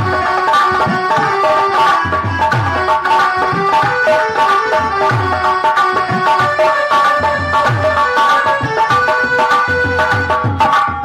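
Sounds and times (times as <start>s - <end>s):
electronic keyboard melody: 0.0s - 11.0s.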